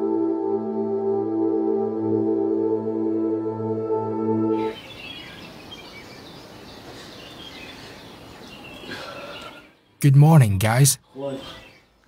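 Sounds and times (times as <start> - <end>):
ambient music of held tones: 0.0 - 4.8
steady outdoor hiss: 4.5 - 12.0
birds chirping: 4.6 - 12.0.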